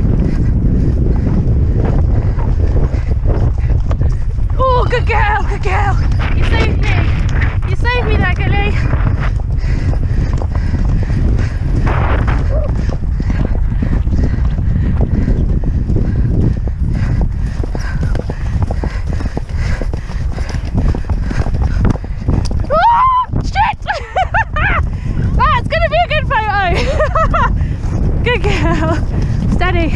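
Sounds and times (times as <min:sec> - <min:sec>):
hoofbeats galloping over turf: 0:00.0 - 0:29.9
wind rumble on microphone: 0:00.0 - 0:29.9.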